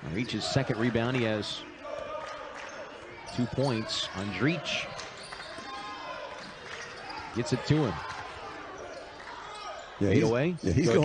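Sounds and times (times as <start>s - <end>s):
basketball court noise: 0.2s - 10.0s.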